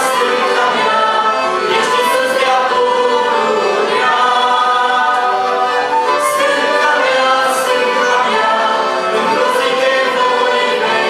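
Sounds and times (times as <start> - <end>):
accordions: 0.0 - 11.0
flute: 0.0 - 11.0
women singing a hymn: 0.0 - 11.0.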